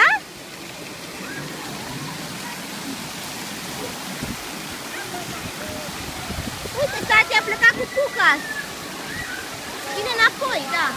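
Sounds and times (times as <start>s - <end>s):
running water: 0.0s - 10.9s
faint voices: 0.9s - 10.9s.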